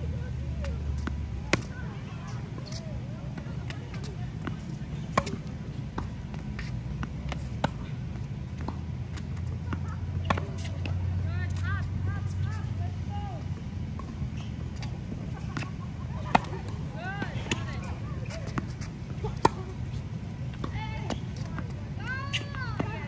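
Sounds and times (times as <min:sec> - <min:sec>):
steady low rumble: 0:00.0 - 0:22.0
racket striking tennis ball: 0:00.6 - 0:11.0, 0:15.5 - 0:22.9
tennis ball bouncing: 0:00.6 - 0:12.6, 0:13.6 - 0:23.0.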